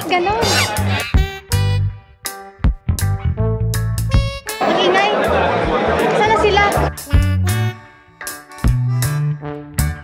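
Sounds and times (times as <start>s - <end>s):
background music with bass line: 0.0s - 4.6s, 5.2s - 10.0s
babble of many voices: 4.6s - 6.9s.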